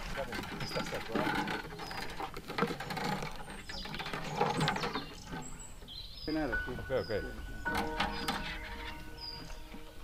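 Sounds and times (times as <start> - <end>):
wooden nest box scraping: 0.0 - 10.0.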